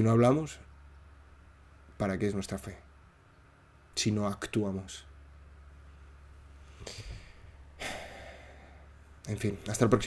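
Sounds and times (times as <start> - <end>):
man sighing: 6.8 - 8.9.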